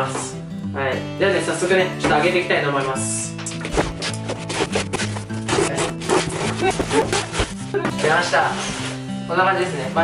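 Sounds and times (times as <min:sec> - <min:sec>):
background music: 0:00.0 - 0:10.0
blade scraping through packing tape: 0:03.5 - 0:07.8.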